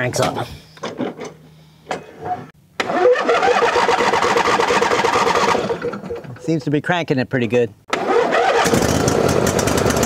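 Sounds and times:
mower engine running: 2.8 - 6.2, 7.9 - 10.0
electric starter cranking: 2.8 - 6.3, 7.9 - 10.0.

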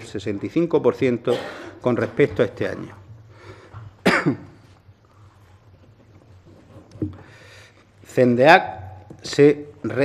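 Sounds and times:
man clearing his throat: 1.3 - 2.2, 4.0 - 4.6.

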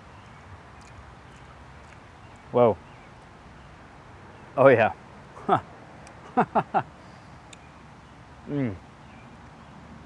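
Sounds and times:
faint hiss: 2.0 - 9.6.

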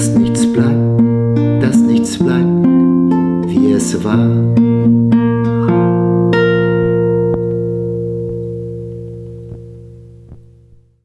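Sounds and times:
plucked guitar notes: 0.0 - 11.0.

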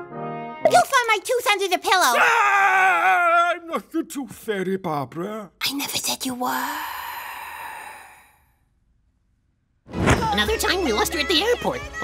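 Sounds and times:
long breathy sigh: 6.6 - 8.7.

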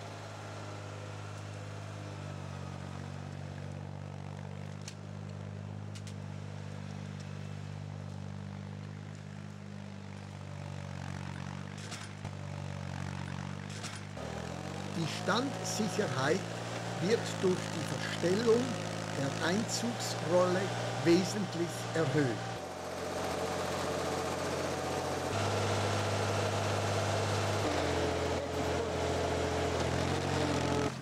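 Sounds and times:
diesel engine running: 0.0 - 31.0.

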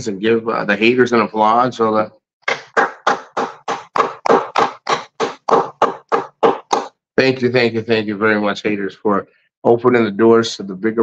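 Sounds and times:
person clapping hands: 2.5 - 6.9.

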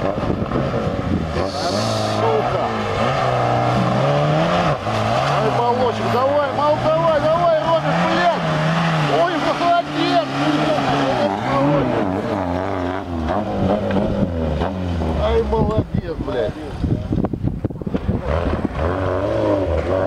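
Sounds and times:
wheels churning mud: 0.0 - 15.7, 17.9 - 20.0
engine revving hard: 0.0 - 15.8, 18.0 - 20.0.

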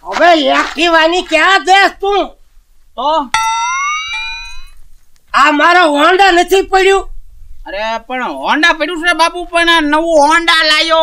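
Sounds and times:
struck note sliding upward: 3.4 - 4.7.

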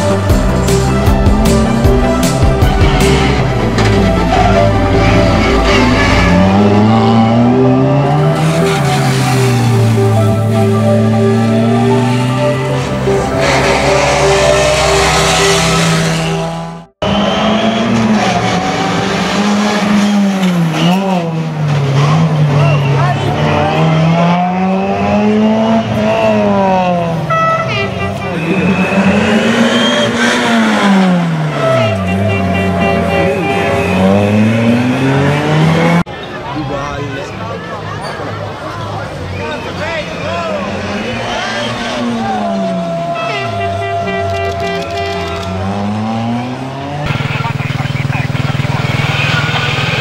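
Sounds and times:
background music: 0.0 - 17.6
rally car engine revving: 0.0 - 36.1, 39.8 - 50.0.

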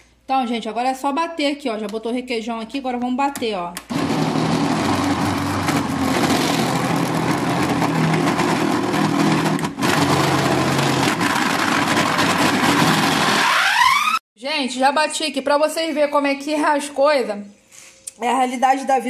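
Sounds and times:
blender coupling breaking: 3.8 - 14.2
electric blender running: 3.9 - 13.8.

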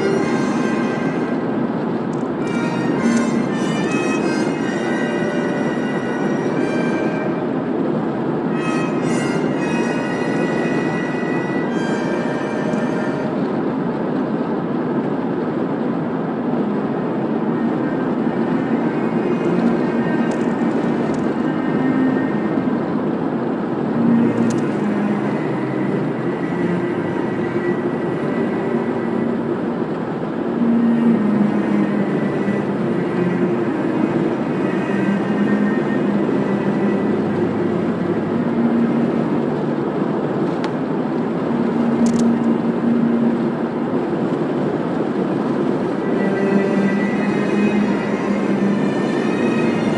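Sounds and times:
car radio music: 0.0 - 13.6, 17.1 - 49.9
car tyre and engine noise: 0.0 - 49.9.

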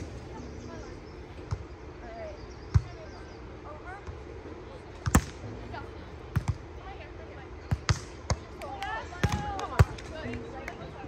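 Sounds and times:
volleyball hit by hand: 5.0 - 5.4, 7.7 - 10.1.

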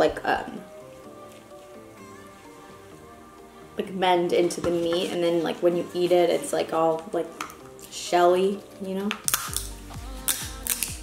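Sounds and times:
crab shell crunching and cracking: 9.2 - 9.7, 10.3 - 11.0.

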